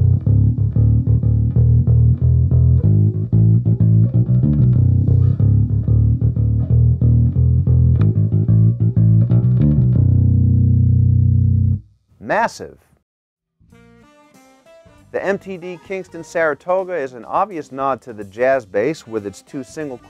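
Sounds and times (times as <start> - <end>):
electric bass plucked notes: 0.0 - 11.9.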